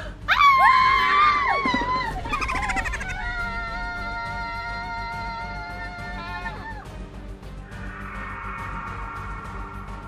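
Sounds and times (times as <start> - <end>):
woman screaming: 0.3 - 6.9.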